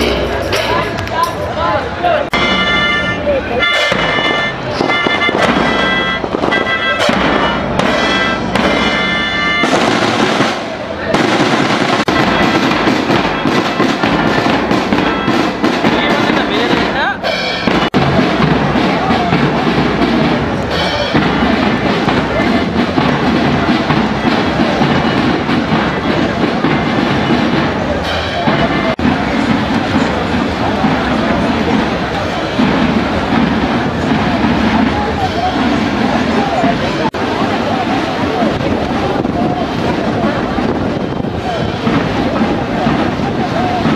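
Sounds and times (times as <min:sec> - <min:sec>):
large crowd noise: 0:00.0 - 0:43.9
marching band drums: 0:00.0 - 0:43.9
loud dense crackling: 0:03.6 - 0:17.0.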